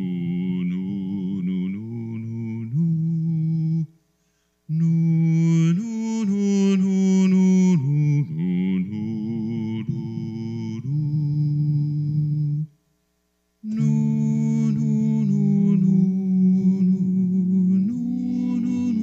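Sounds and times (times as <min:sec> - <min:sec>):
man singing a hymn unaccompanied: 0:00.0 - 0:04.0, 0:04.7 - 0:12.8, 0:13.6 - 0:19.0.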